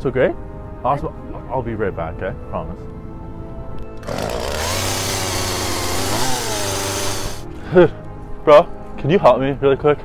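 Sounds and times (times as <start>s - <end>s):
chainsaw engine revving: 4.0s - 7.4s.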